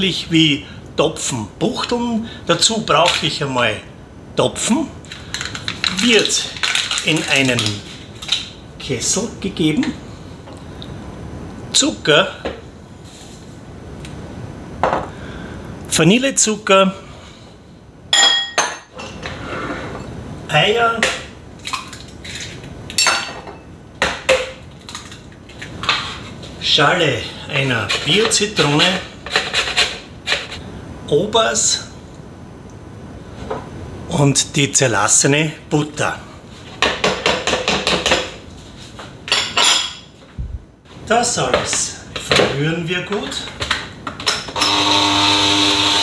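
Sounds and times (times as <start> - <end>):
scraping and handling noise: 5.0 - 9.0, 21.6 - 23.6, 24.2 - 26.6, 27.8 - 30.6
glass dish clinking on countertop: 18.2 - 18.9
dishes clattering: 18.2 - 19.4, 22.4 - 24.6, 39.3 - 40.2.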